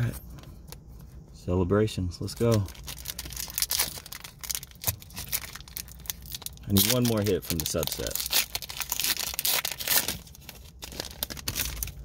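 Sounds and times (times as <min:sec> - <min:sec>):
foil wrapper crinkling: 0:02.3 - 0:12.0.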